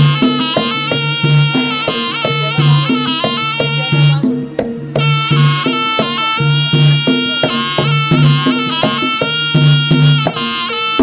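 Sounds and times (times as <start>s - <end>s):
drums beating: 0.0s - 11.0s
reedy trumpet melody: 0.0s - 11.0s.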